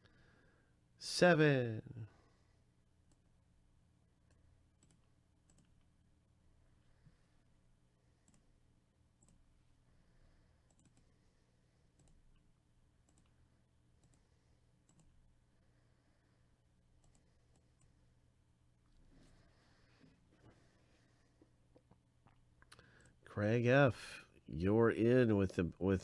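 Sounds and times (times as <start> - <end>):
faint low hum: 0.0 - 26.0
computer mouse clicks: 4.2 - 5.9, 8.2 - 8.5, 9.2 - 9.4, 10.7 - 11.1, 11.9 - 13.4, 14.0 - 15.2, 17.0 - 18.0.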